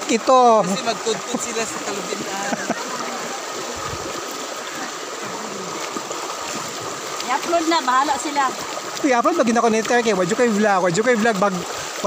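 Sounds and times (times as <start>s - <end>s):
river water rushing over stones: 0.0s - 12.0s.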